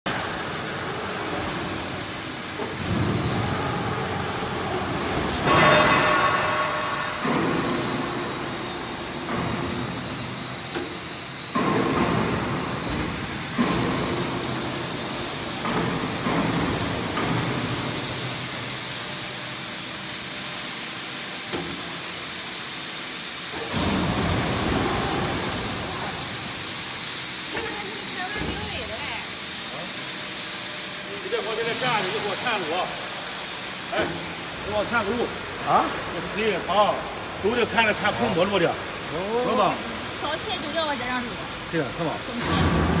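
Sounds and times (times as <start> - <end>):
hydraulic pump hum: 0.1 - 43.0
press machine surges: 0.1 - 43.0.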